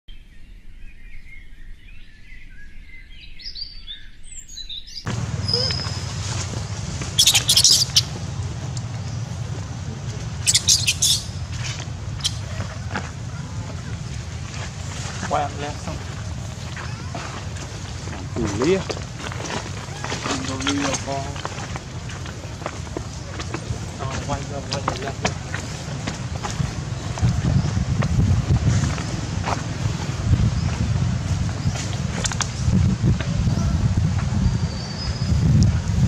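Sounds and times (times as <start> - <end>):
small birds chirping: 0.3 - 29.2
steady low rumble: 5.1 - 36.0
sharp high-pitched calls: 5.4 - 6.1, 7.2 - 8.2, 10.4 - 11.5, 12.2 - 12.6.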